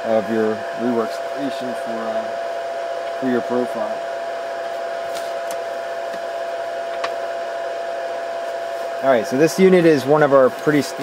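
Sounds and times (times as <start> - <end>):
fan whirring with hum: 0.0 - 11.0.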